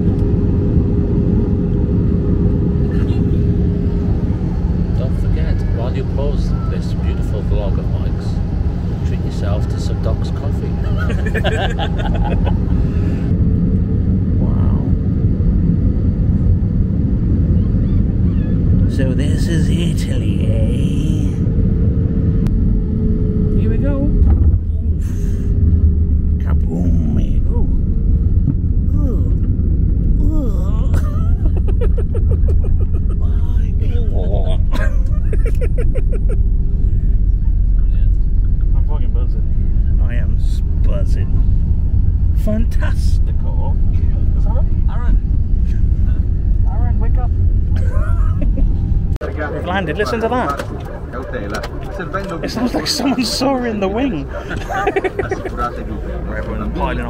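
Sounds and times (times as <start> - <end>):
jet engine and airflow rumble: 0.0 - 57.0
steady hum: 0.0 - 57.0.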